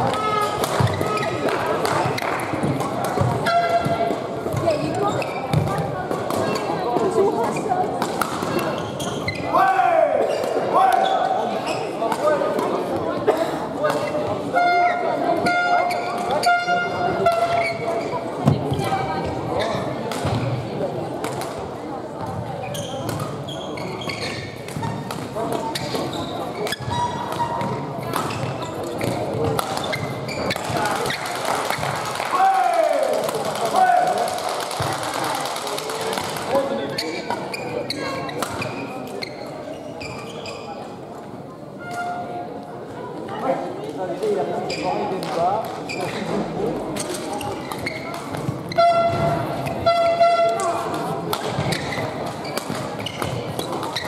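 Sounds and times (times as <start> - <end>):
racket hitting shuttlecock: 0.0 - 4.2, 8.0 - 8.7, 24.6 - 31.8, 50.5 - 54.0
voices echoing: 0.0 - 54.0
shoe squeaks on court floor: 0.1 - 2.4, 3.2 - 5.8, 8.5 - 9.6, 10.3 - 12.1, 14.0 - 20.5, 22.6 - 31.9, 36.9 - 40.9, 41.8 - 42.4, 44.6 - 45.2, 45.8 - 50.7, 51.4 - 54.0.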